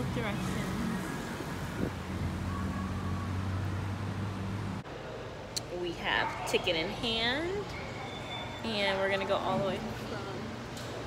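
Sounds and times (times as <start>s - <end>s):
outdoor traffic noise: 0.0s - 11.0s.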